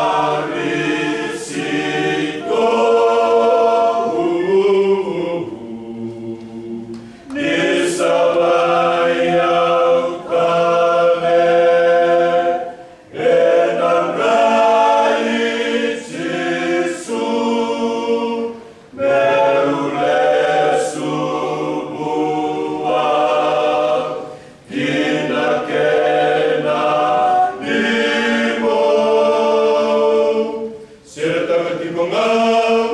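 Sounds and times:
male choir singing a hymn: 0.0 - 32.9.

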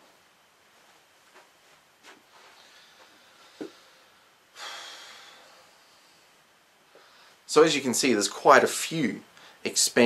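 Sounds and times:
man breathing out through nose: 2.6 - 6.2.

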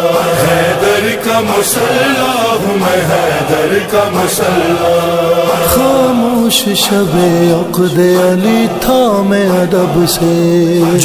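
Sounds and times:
man chanting devotional song: 0.0 - 11.0.

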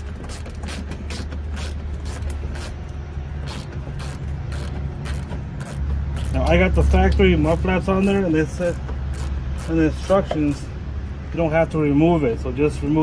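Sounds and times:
hand ratchet clicking: 0.0 - 2.8, 3.4 - 10.6.

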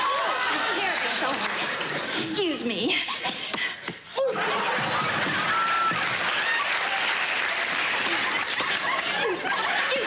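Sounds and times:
audience laughing: 0.0 - 2.6, 4.2 - 10.0
audience applauding: 4.5 - 9.7.

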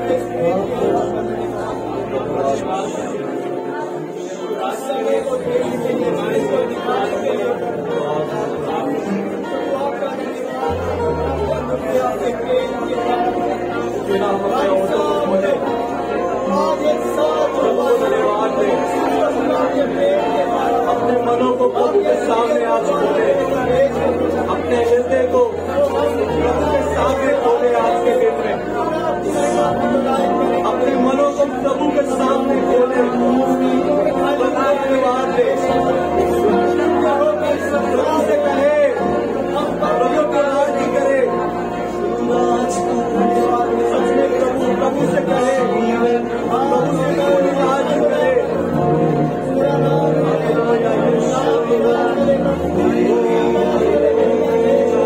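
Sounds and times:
church worship music: 0.0 - 55.0
congregation talking or singing: 0.0 - 55.0
many voices in a hall: 0.0 - 55.0.

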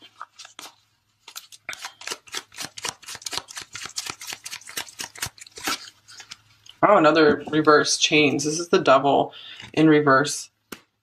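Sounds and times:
cards being shuffled: 0.0 - 6.7.

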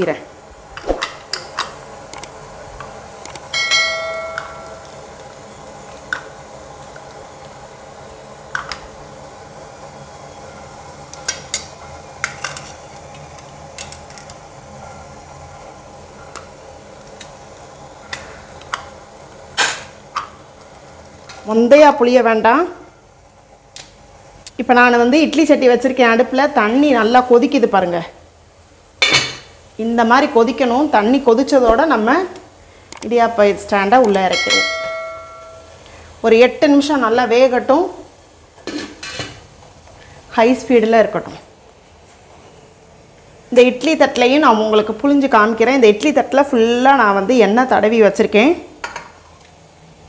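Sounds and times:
bright metallic ding: 3.6 - 4.8, 34.3 - 35.8.

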